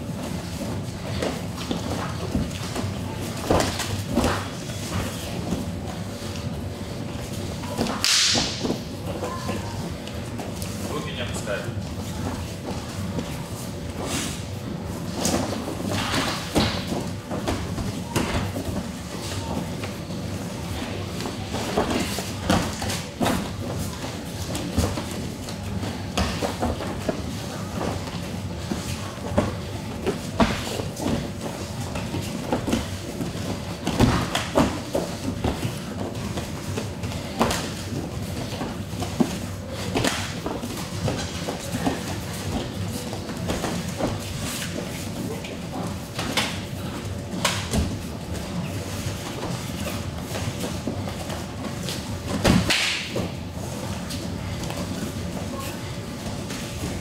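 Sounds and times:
bare feet slapping mat: 20.8 - 55.1.

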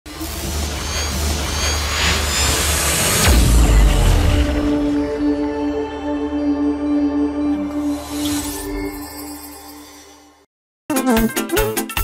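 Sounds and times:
cinematic intro music: 0.1 - 11.9.

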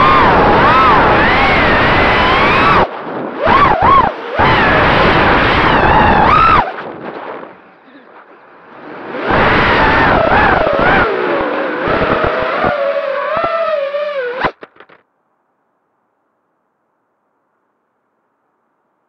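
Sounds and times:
wind buffeting: 0.0 - 13.6
drone motors whining: 0.0 - 14.9.

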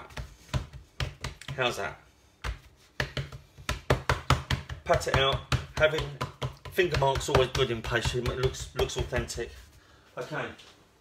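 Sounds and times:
fingertips patting dough: 0.0 - 9.7.

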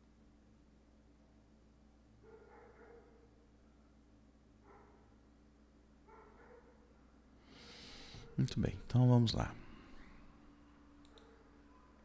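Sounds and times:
computer mouse clicks: 11.0 - 11.4.

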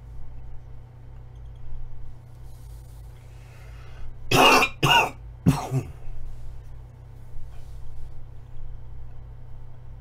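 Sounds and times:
man coughing: 4.3 - 6.1.

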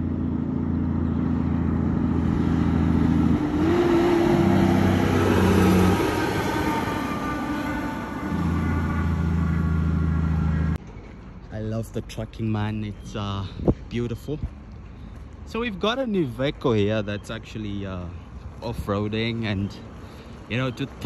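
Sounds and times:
truck passing at speed: 0.0 - 11.4.

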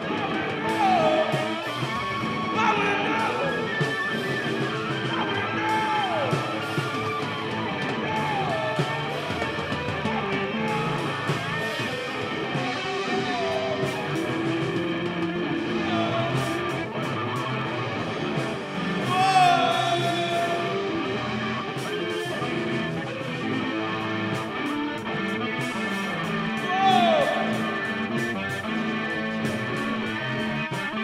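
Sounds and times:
lead guitar bending notes: 0.0 - 31.0
rock band backing: 0.0 - 31.0.

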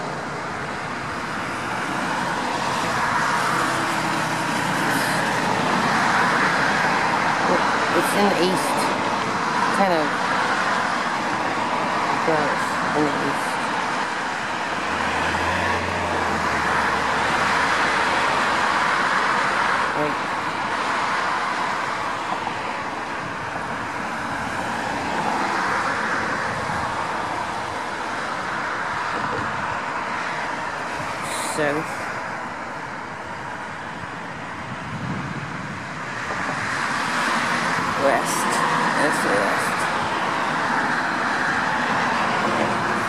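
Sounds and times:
traffic passing: 0.0 - 43.0.

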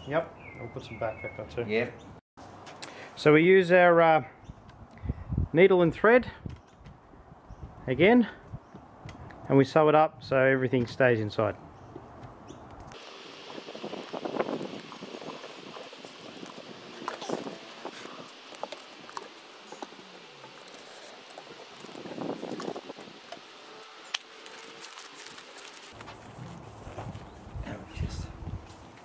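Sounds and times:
steady hiss: 13.0 - 26.0.

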